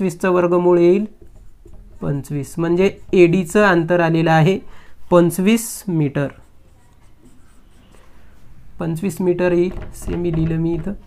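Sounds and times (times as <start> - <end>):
marker scratching on whiteboard: 0.3 - 4.4, 5.1 - 11.0.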